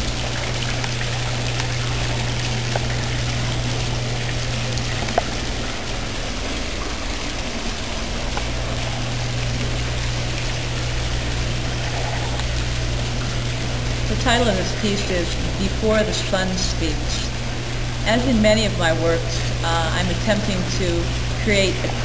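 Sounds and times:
fountain jets splashing into basin: 0.0s - 22.0s
steady low hum: 0.0s - 22.0s.

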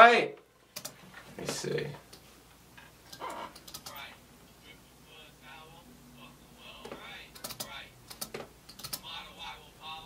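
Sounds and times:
computer keyboard clicks: 0.8s - 1.0s, 3.6s - 4.0s, 7.4s - 9.0s.

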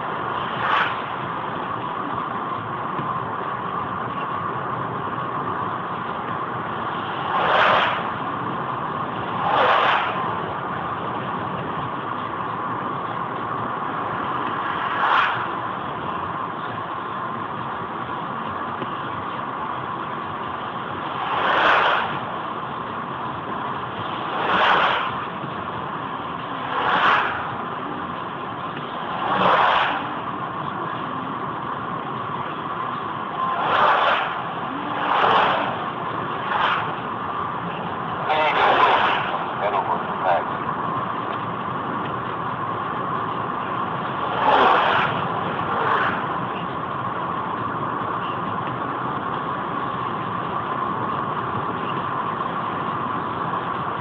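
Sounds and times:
car engine and tyre noise: 0.0s - 54.0s
passing vehicles whooshing: 0.0s - 54.0s.

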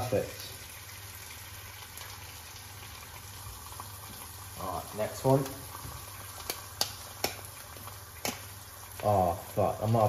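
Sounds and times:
eggs sizzling in a pan: 0.0s - 10.0s
knife tapping eggshell: 6.4s - 7.4s.

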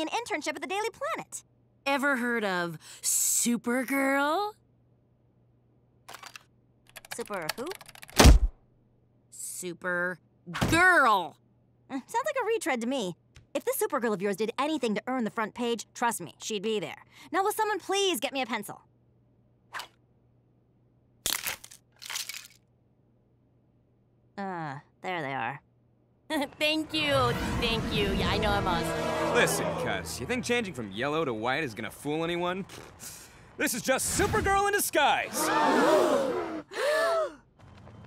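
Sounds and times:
pencils snapping and crushing: 21.2s - 22.6s.

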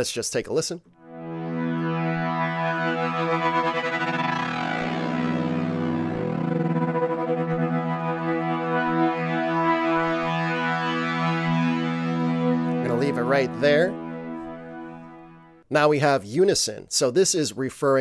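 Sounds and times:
synthesizer pad chord with tremolo: 1.0s - 15.7s.

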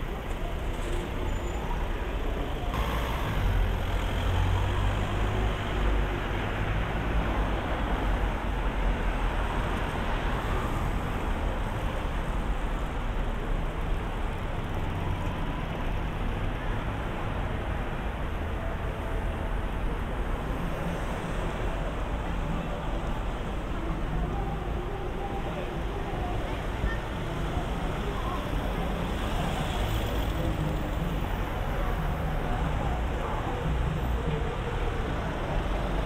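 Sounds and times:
cars passing on road: 0.0s - 36.0s.

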